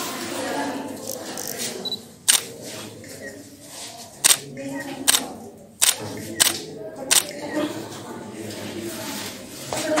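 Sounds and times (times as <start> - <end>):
camera shutter click: 5.8 - 7.4.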